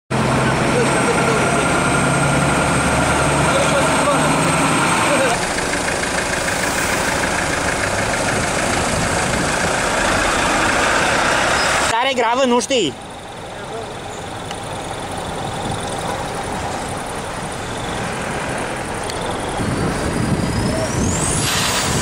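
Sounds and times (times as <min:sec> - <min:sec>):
vehicle engine idling: 0:00.1 - 0:21.0
indistinct voices: 0:00.1 - 0:21.5
loud steady background noise: 0:00.1 - 0:22.0.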